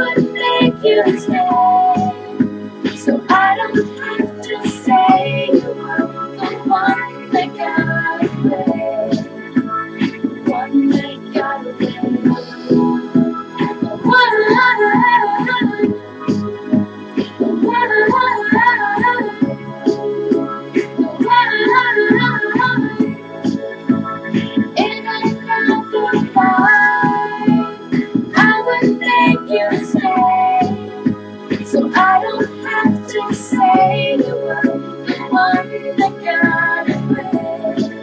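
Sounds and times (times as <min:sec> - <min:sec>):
girl singing pop song: 0:00.0 - 0:38.0
karaoke backing track: 0:00.0 - 0:38.0.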